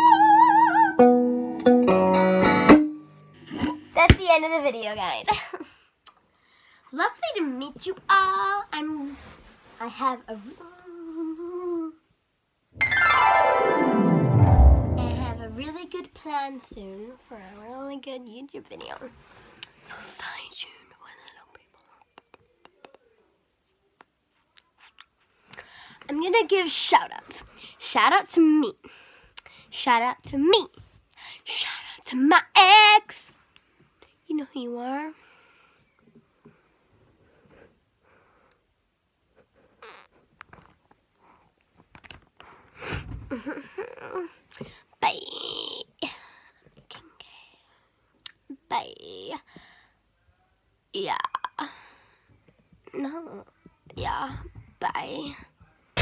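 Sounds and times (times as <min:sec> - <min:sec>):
girl whispering: 0:10.2 - 0:12.0, 0:19.9 - 0:22.9.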